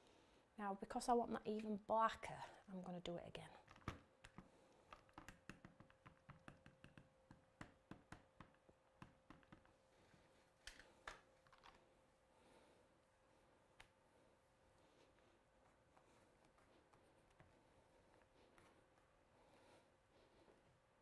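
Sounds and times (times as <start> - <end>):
ink pad tapping on stamp: 5.1 - 9.7.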